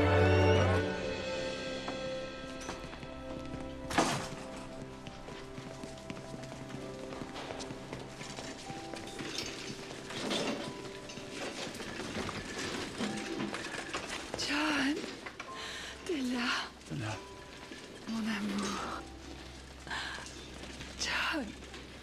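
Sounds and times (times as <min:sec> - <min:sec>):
soft film score: 0:00.0 - 0:22.0
footsteps in a hallway: 0:01.8 - 0:15.6.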